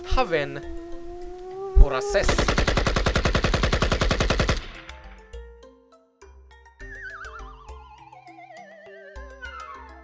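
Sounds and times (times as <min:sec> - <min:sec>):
automatic rifle gunfire: 0:02.2 - 0:04.9
light music with plucked notes: 0:04.8 - 0:10.0.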